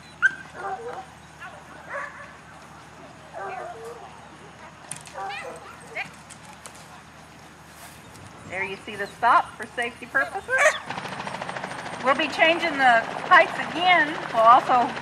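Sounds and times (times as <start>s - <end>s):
dog barking and yipping: 0.1s - 2.4s, 5.1s - 6.1s, 10.3s - 10.9s.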